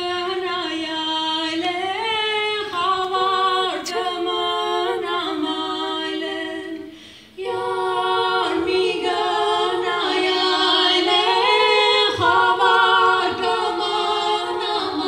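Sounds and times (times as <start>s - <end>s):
a cappella vocal quartet singing: 0.0s - 15.0s.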